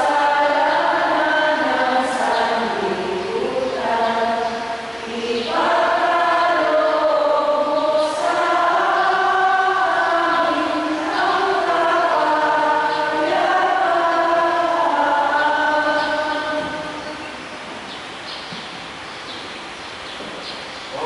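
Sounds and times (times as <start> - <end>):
choir chanting: 0.0 - 17.4.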